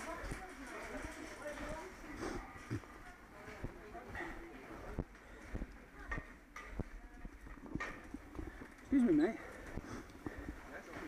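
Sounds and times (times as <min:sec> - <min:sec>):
shopping trolley on tiles: 0:00.0 - 0:02.7
footsteps: 0:00.0 - 0:11.0.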